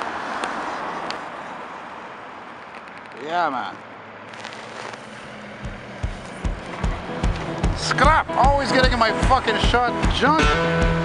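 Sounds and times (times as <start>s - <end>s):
roadside traffic rush: 0.0s - 11.0s
truck passing: 0.0s - 11.0s
deep bass thump: 5.6s - 11.0s
music track: 5.8s - 11.0s.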